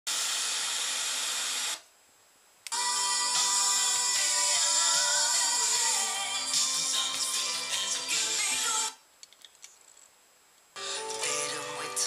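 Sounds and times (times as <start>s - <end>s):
music from radio: 2.7s - 9.0s, 10.8s - 12.0s.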